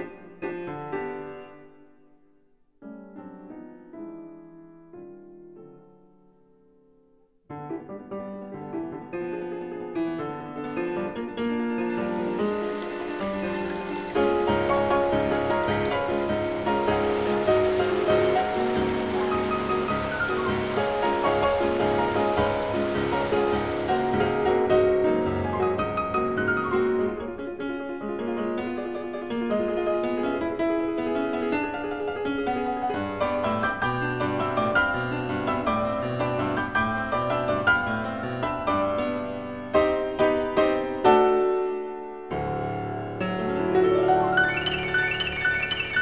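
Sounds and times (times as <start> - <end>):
gentle piano music: 2.8 - 46.0
creek rapids rushing: 11.8 - 24.6, 44.3 - 46.0.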